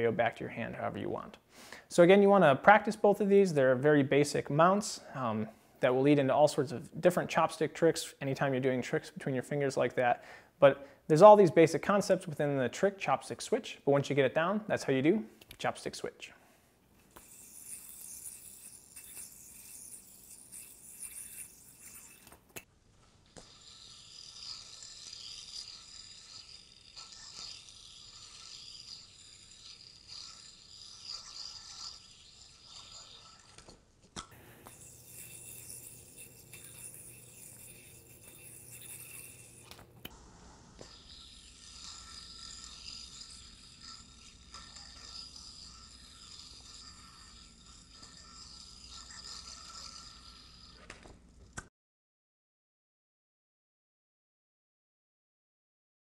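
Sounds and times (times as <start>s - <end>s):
yo-yo whirring: 17.0s - 51.7s
string rubbing over fingers: 17.1s - 33.8s, 34.4s - 51.2s.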